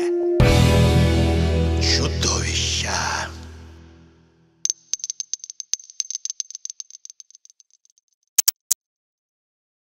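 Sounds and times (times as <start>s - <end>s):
sharp clicks: 8.4s - 8.8s.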